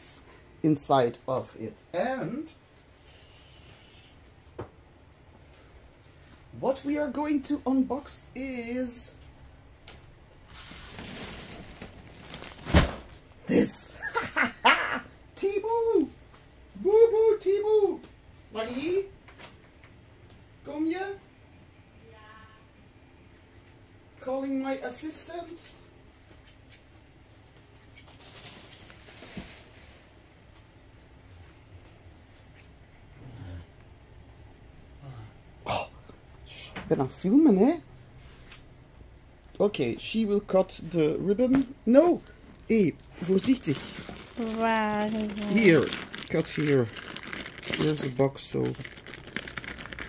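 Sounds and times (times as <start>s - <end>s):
plastic mailer bag rustling: 10.5s - 13.4s, 28.1s - 30.4s, 42.7s - 50.0s.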